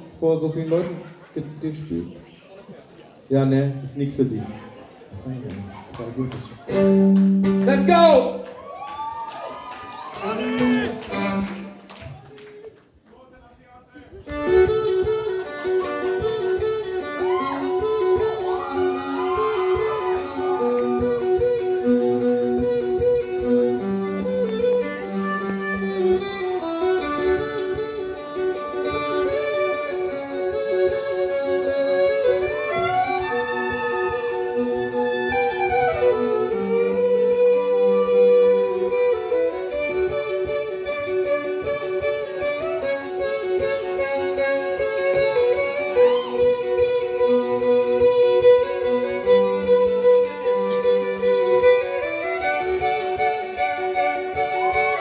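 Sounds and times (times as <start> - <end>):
looped violin accompaniment: 10.0 - 12.0, 14.2 - 55.0
violin playing bowed melody: 10.2 - 11.9, 14.2 - 55.0.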